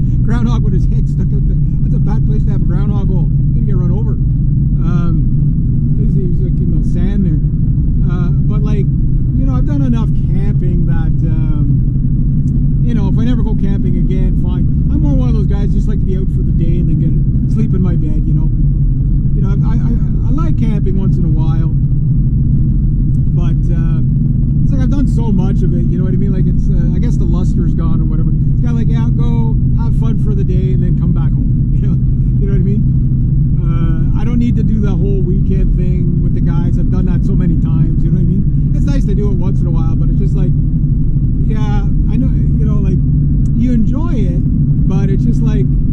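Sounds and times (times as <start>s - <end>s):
man talking: 0.0s - 4.2s, 4.8s - 5.3s, 5.9s - 11.8s, 12.8s - 18.5s, 19.3s - 21.8s, 23.2s - 32.8s, 33.6s - 40.6s, 41.4s - 45.8s
car engine and tyres drone: 0.0s - 45.9s.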